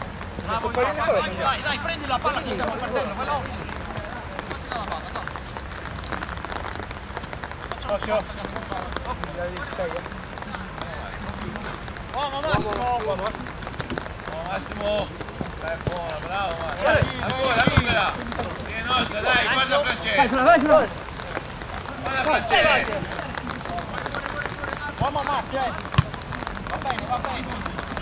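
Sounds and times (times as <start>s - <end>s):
footballers shouting: 0.0s - 5.4s, 14.2s - 28.0s.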